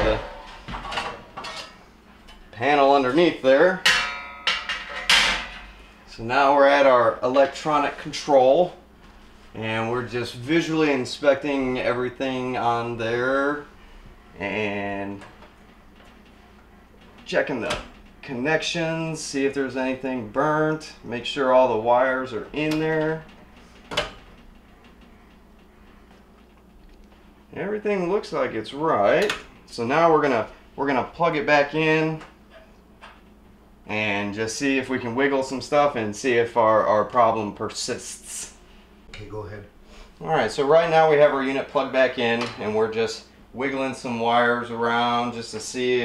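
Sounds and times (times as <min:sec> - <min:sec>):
sheet metal panel clanking: 0:00.0 - 0:01.8, 0:03.8 - 0:05.8.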